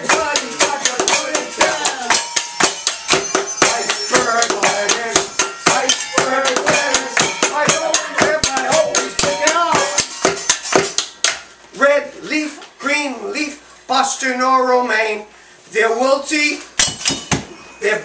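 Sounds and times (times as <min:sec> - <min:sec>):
group of voices singing: 0:00.0 - 0:10.2
kitchen utensils clattering beat: 0:00.0 - 0:11.6, 0:16.8 - 0:17.6.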